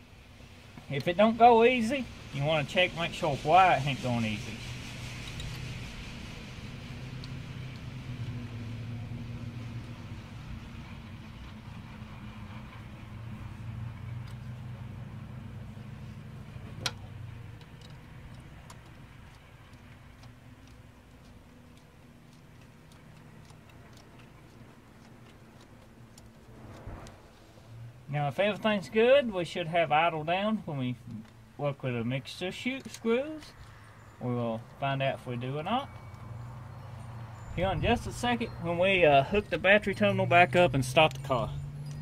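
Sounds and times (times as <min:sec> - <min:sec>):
low mechanical hum: 0:00.0 - 0:28.9
faint ticks: 0:16.8 - 0:27.2.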